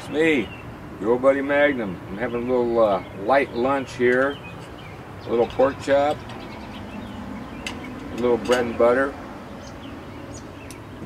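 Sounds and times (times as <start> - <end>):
car passing: 4.6 - 11.0.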